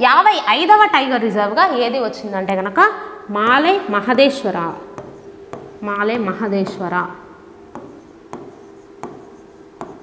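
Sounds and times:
pen writing on a board: 4.9 - 6.8, 7.7 - 10.0
soft taps: 7.7 - 10.0.

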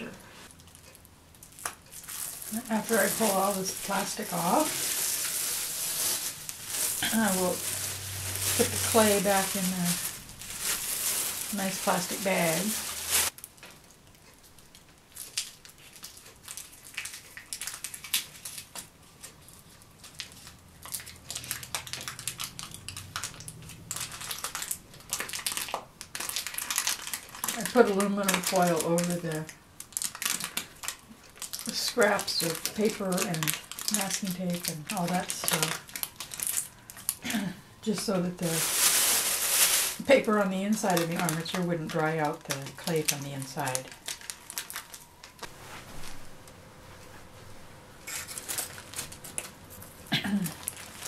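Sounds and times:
plastic sheeting crinkling: 0.0 - 13.5, 15.1 - 51.0.

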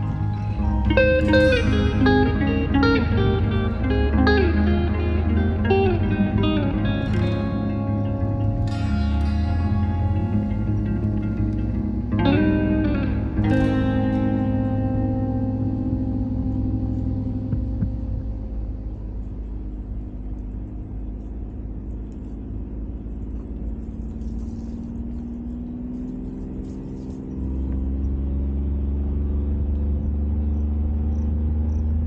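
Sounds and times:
vehicle engine rumbling: 0.0 - 32.0.

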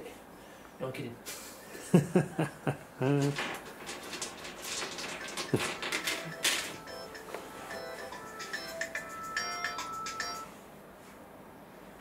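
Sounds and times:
handling clicks and rustles: 3.2 - 7.5
phone ringtone beeping melody: 6.2 - 10.5.

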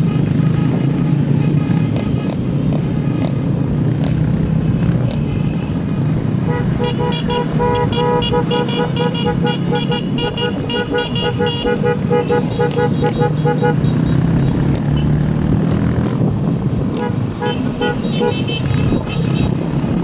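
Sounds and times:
wind and road noise: 0.0 - 20.0
horn tooting rapidly: 6.5 - 15.1.

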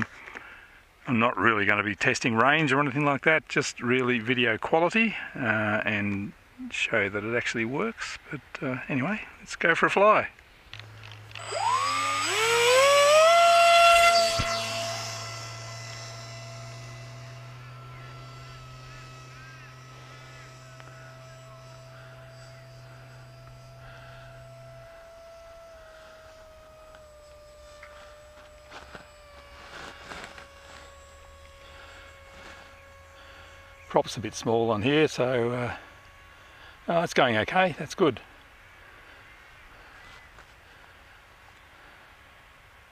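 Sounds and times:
model plane motor whine: 10.6 - 42.9.

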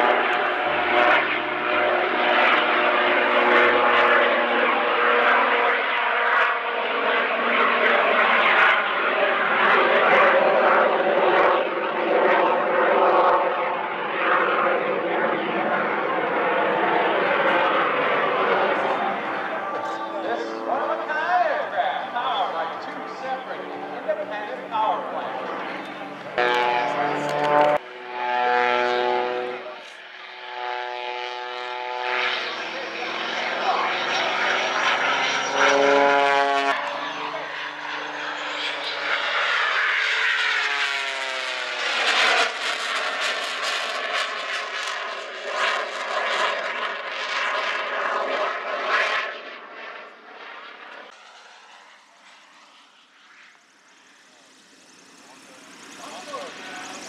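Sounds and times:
propeller plane flying overhead: 0.0 - 57.0.

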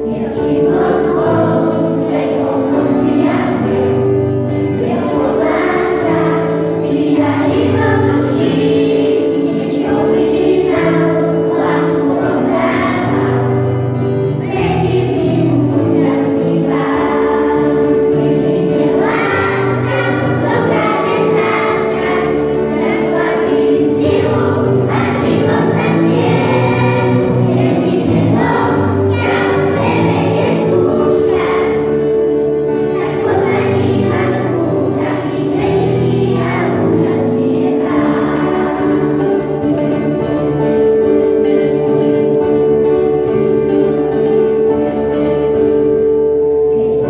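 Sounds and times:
acoustic guitar: 0.0 - 47.0
children's choir singing: 0.0 - 47.0.

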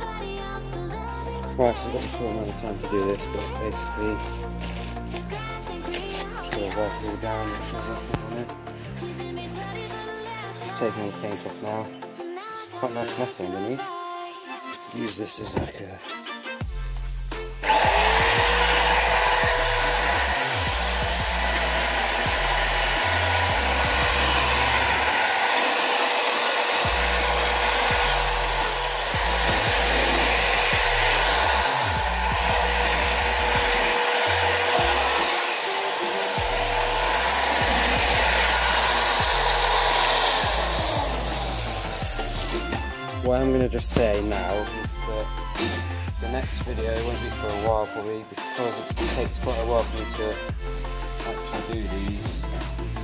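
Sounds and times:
background music with bass: 0.0 - 13.8, 14.9 - 53.0
angle grinder on sheet metal: 17.6 - 43.0.

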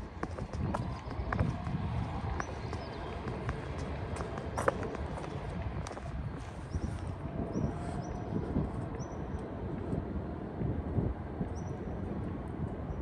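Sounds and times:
footsteps on stone paving: 0.0 - 8.0
low city rumble: 0.0 - 13.0.

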